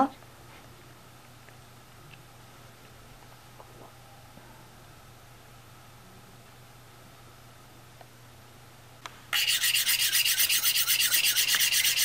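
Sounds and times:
fast rhythmic rasping rub: 0:09.4 - 0:12.0.

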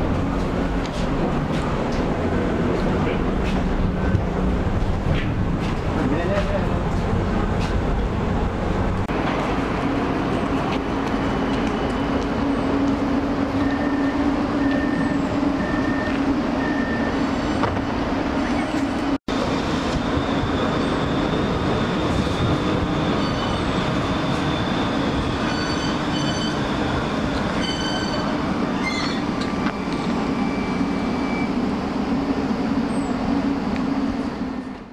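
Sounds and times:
tram running hum: 0:00.0 - 0:34.9.

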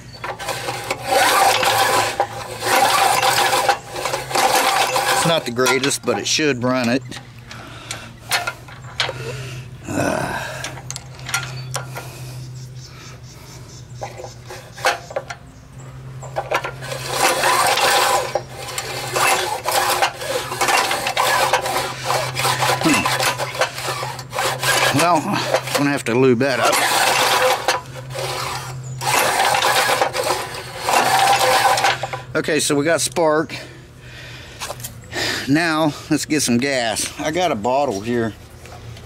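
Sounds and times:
small engine cranked by recoil starter: 0:00.0 - 0:06.4, 0:16.2 - 0:32.3.

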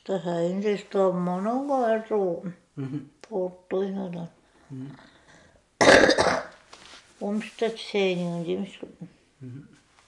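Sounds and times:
woman coughing: 0:05.8 - 0:06.5.

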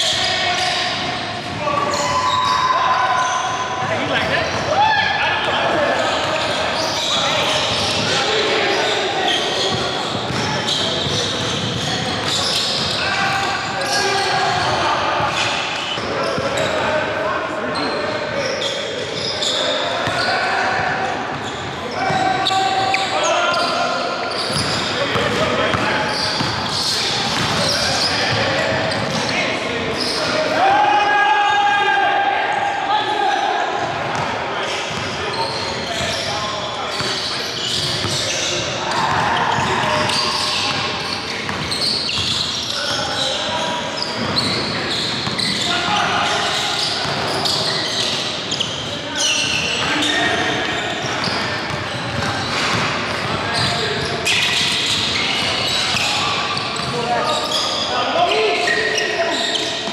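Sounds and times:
players calling out: 0:00.0 - 0:59.9.

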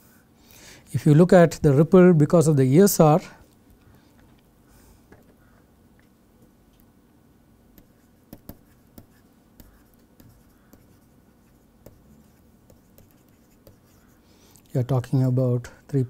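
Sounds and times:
stylus tapping and scratching: 0:07.7 - 0:14.2.

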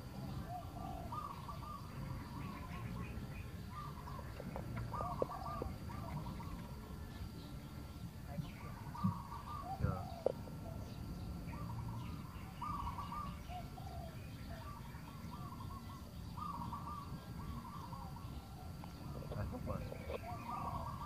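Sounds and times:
bird warbling calls: 0:00.0 - 0:21.0.

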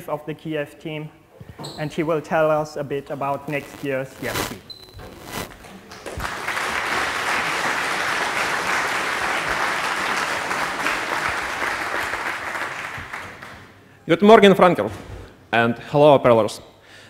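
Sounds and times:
audience applauding: 0:05.8 - 0:13.7.

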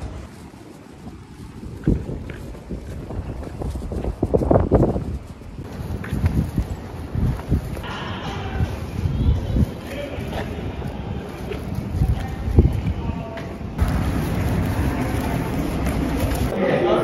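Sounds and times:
wind buffeting microphone: 0:00.0 - 0:16.6.

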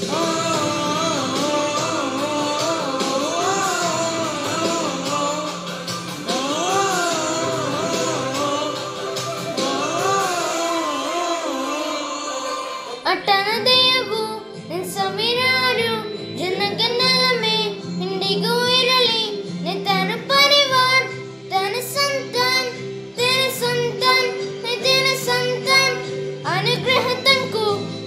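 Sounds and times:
high voice singing: 0:00.0 - 0:27.9
instrumental backing: 0:00.0 - 0:28.0.

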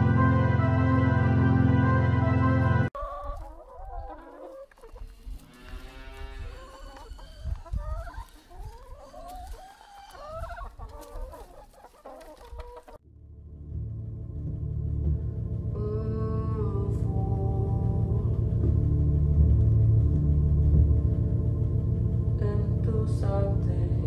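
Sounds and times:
low droning music: 0:00.0 - 0:02.9, 0:13.0 - 0:24.0
music track: 0:00.0 - 0:02.9, 0:13.1 - 0:24.0
hens clucking: 0:03.0 - 0:13.0.

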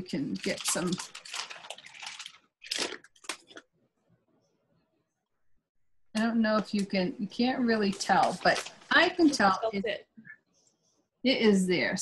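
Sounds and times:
cloth apron rustling: 0:07.7 - 0:09.9.

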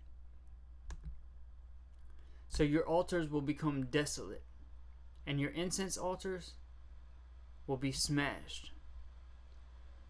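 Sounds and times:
steady low hum: 0:00.0 - 0:10.0
computer mouse click: 0:00.9 - 0:01.2.

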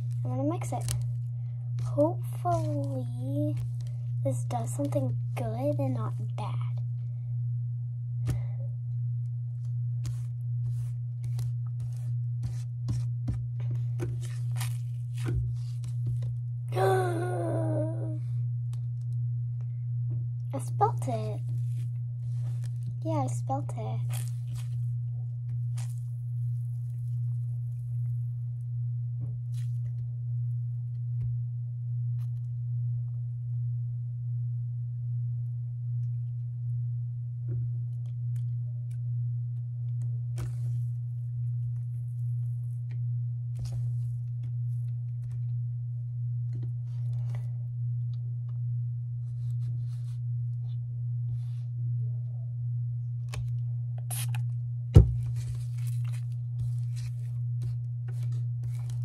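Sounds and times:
low pulsing hum: 0:00.0 - 0:59.0.

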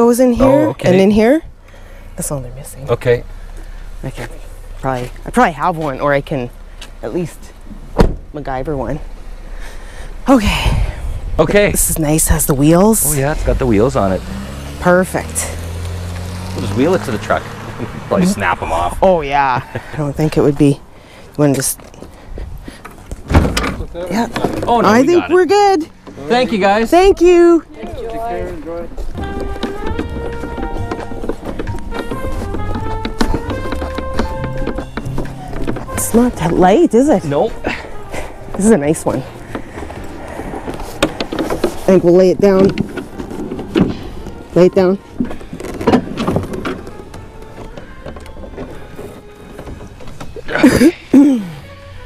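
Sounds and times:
casters rolling over driveway: 0:12.0 - 0:52.0
furniture shifting and handling noise: 0:28.2 - 0:37.0, 0:37.8 - 0:51.3.

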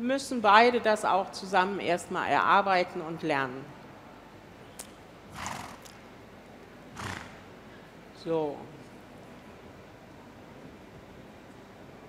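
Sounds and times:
horse snorting: 0:05.3 - 0:06.0, 0:07.0 - 0:07.5.

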